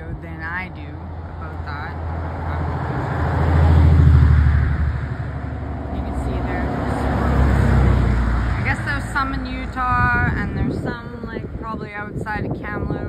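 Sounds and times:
road traffic rumbling past: 0.0s - 13.0s.

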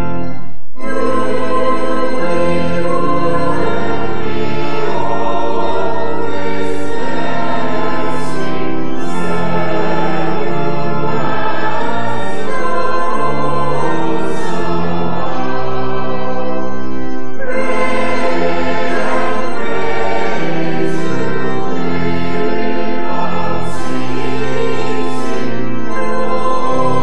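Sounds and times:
church choir singing: 0.0s - 27.0s
organ: 0.0s - 27.0s.

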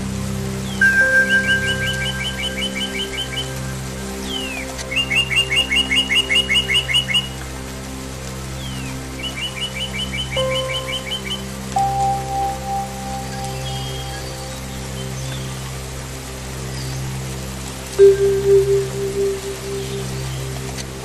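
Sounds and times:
soft ambient music: 0.0s - 21.0s
songbird singing: 0.6s - 7.4s, 8.6s - 16.0s, 18.0s - 21.0s.

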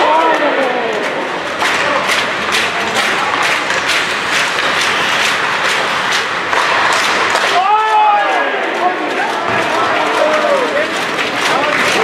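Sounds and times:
ice rink noise: 0.0s - 12.0s.

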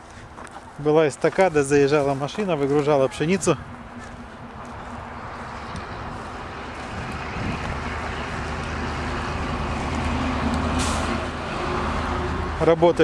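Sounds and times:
vehicle passing on road: 0.0s - 13.0s.

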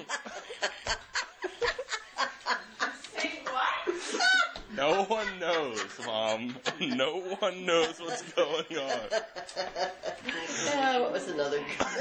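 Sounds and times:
woman laughing hard: 0.0s - 7.2s.

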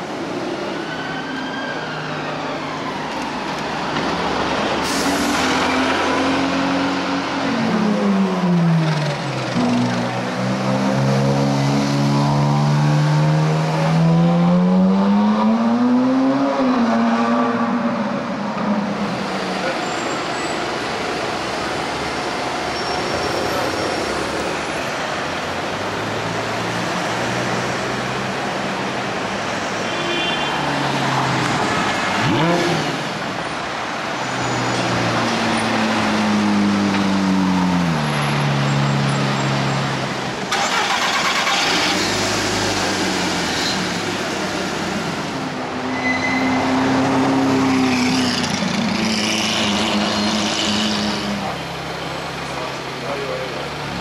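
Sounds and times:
street traffic noise: 0.0s - 54.0s
sports car engines revving: 5.6s - 19.8s, 31.0s - 33.4s, 46.6s - 54.0s.

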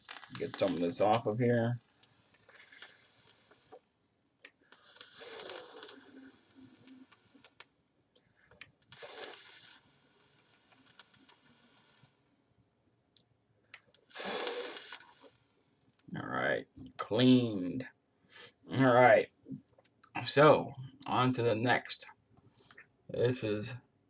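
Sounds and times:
person blowing out hard: 14.1s - 15.2s.

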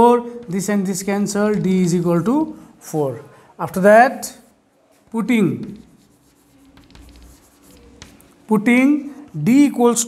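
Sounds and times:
chalk scratching on blackboard: 4.9s - 8.5s.

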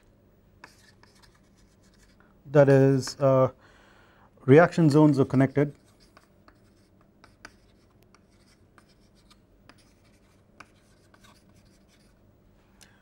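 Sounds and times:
faint steady hum: 0.0s - 13.0s
chalk tapping and scratching: 0.6s - 2.2s, 5.3s - 12.2s.

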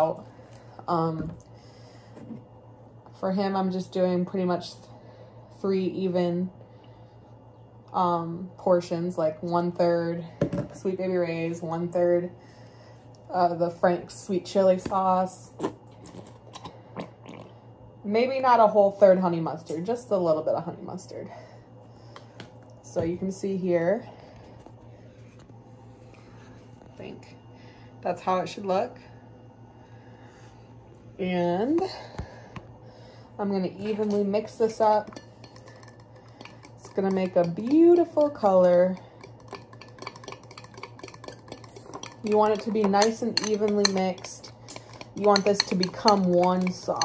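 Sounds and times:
metal spoon stirring in glass bowl: 33.9s - 47.0s.

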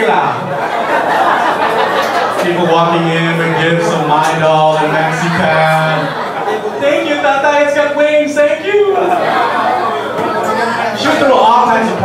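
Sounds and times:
audience laughing and chattering: 0.0s - 12.0s.

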